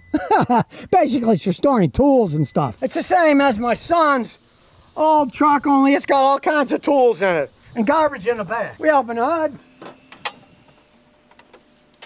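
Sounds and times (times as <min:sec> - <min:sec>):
hood latch click: 0:09.8 - 0:10.4
faint clicks of hood opening: 0:09.8 - 0:12.0.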